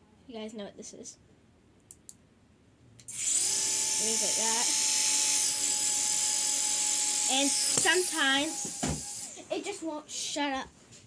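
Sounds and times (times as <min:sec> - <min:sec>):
small propeller motor whirring: 0:03.1 - 0:09.3.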